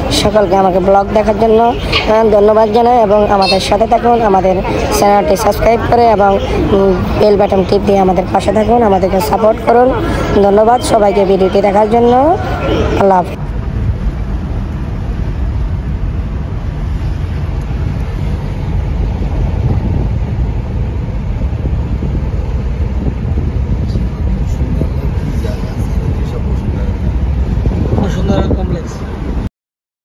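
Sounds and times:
car cabin road and engine rumble: 0:00.0 - 0:29.5.

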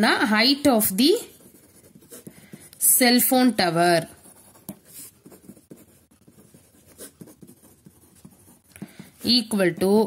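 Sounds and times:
pen scratching on paper: 0:00.7 - 0:03.2, 0:03.8 - 0:10.0.

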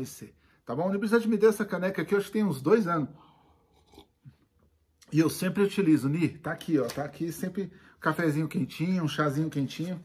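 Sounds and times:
man sipping and swallowing: 0:03.4 - 0:05.1.

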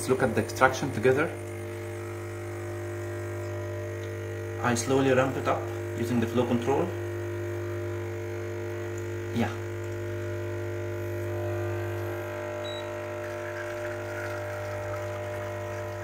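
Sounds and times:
espresso machine pump humming: 0:00.0 - 0:16.0.

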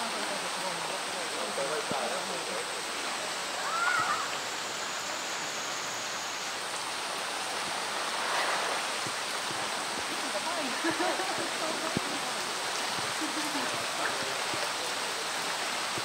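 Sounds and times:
heavy rain on pool water: 0:00.0 - 0:16.0
water running into pool: 0:00.0 - 0:16.0.

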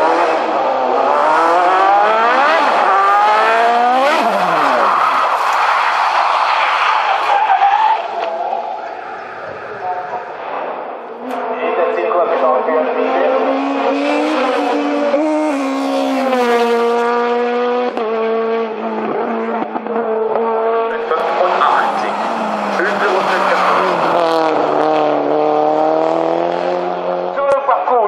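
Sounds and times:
race cars passing at full throttle: 0:00.0 - 0:28.0.

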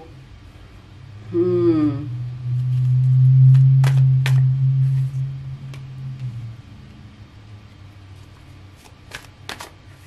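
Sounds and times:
loud low hum: 0:00.0 - 0:08.8
cards snapping: 0:08.8 - 0:10.0.

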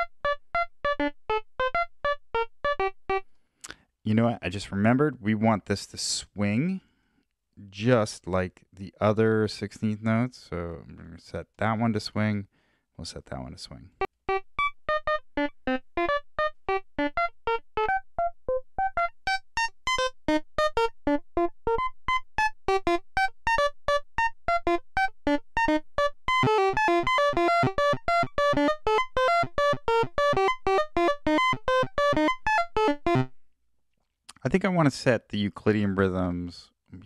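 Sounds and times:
synthesizer plucked note sequence: 0:00.0 - 0:03.2, 0:14.3 - 0:33.3.

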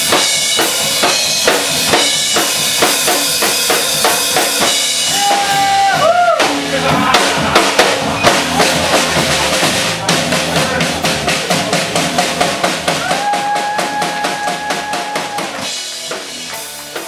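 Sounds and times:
rock drum solo: 0:00.0 - 0:17.0.

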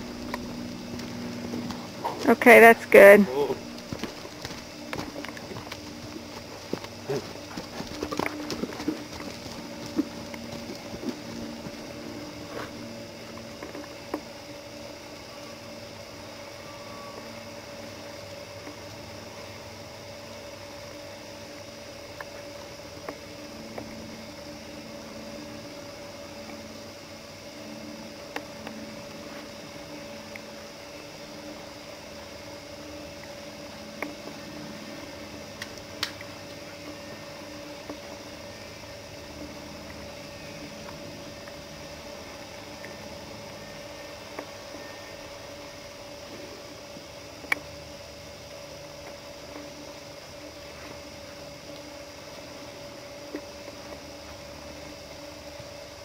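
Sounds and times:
horse hoofbeats on dirt: 0:00.0 - 0:02.9, 0:03.6 - 0:12.9
faint steady hum: 0:00.0 - 0:56.0.

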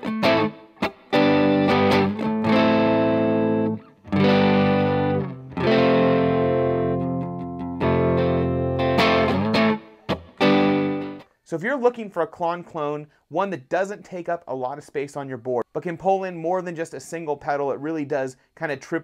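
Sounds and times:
overdriven electric guitar chords: 0:00.0 - 0:11.2.

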